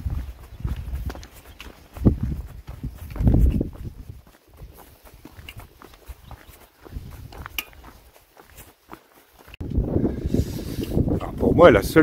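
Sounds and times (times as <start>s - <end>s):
wind rumbling on microphone: 0.0s - 8.1s, 9.4s - 12.0s
footsteps on stony dirt path: 0.0s - 12.0s.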